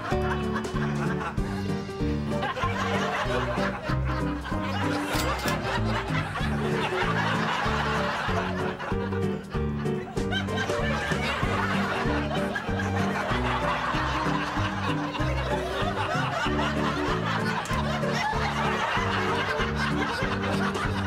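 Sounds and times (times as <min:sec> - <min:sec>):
audience laughter: 0:00.0 - 0:21.0
light comedic music: 0:00.0 - 0:21.0.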